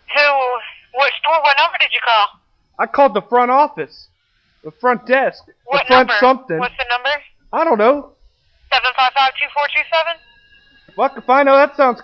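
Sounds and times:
faint steady line tones: 0:00.0 - 0:12.0
voice over a telephone line: 0:00.1 - 0:03.0, 0:05.7 - 0:07.7, 0:08.7 - 0:10.2.

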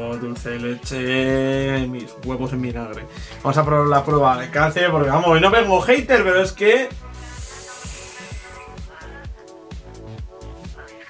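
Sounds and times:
background music with steady beat: 0:00.0 - 0:11.0
e-cigarette vapour hiss: 0:07.0 - 0:09.2.

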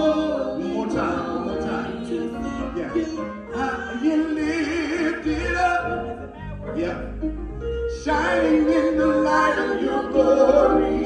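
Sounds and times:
choir singing in harmony: 0:00.0 - 0:06.2, 0:07.9 - 0:11.0.

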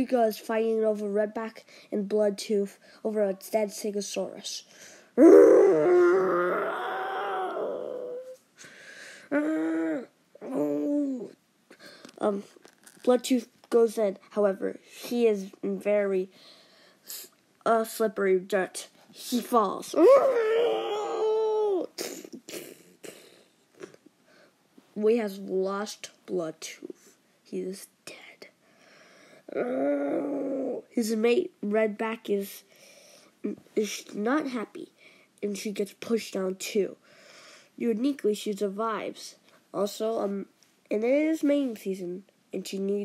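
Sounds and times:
faint breaths: 0:04.6 - 0:05.2, 0:08.6 - 0:09.4, 0:16.3 - 0:17.4, 0:28.5 - 0:29.6, 0:32.6 - 0:33.4, 0:37.0 - 0:37.8
person imitating dinosaur roars: 0:05.2 - 0:08.4, 0:09.3 - 0:11.3, 0:20.0 - 0:21.9, 0:29.5 - 0:30.9.

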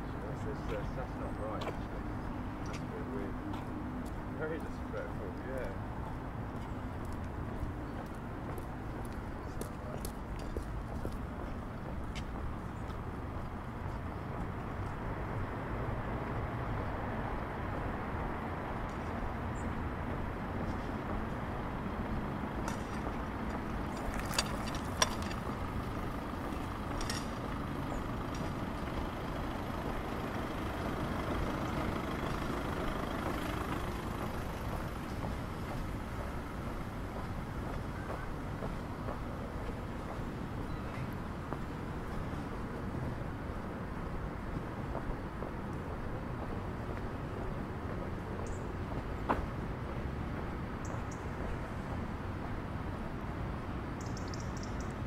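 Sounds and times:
distant road traffic rumble: 0:00.0 - 0:55.0.

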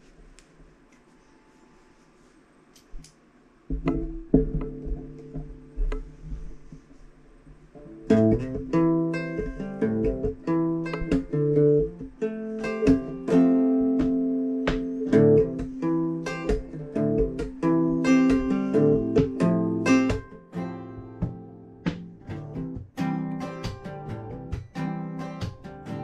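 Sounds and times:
acoustic guitar: 0:03.7 - 0:07.0, 0:07.7 - 0:26.0.

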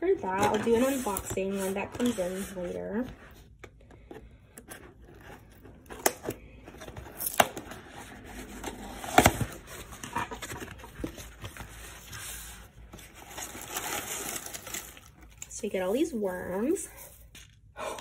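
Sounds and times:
cardboard scraping and rustling: 0:00.2 - 0:03.4, 0:06.6 - 0:15.1.

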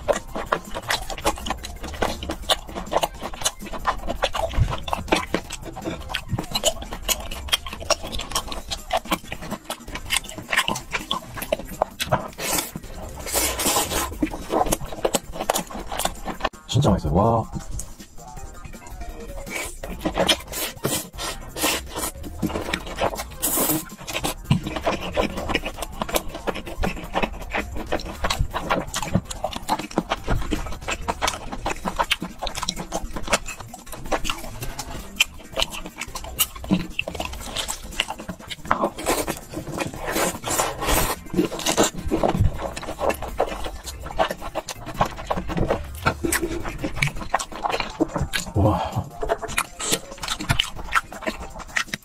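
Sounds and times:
slurping noodles: 0:00.0 - 0:52.0
wet chewing: 0:00.0 - 0:52.0.

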